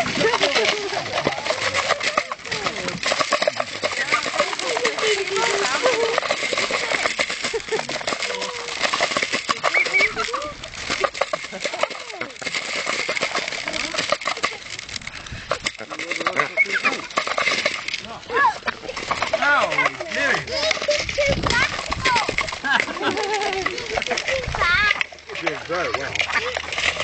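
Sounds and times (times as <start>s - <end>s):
duck bills clattering in feed: 0.0s - 27.0s.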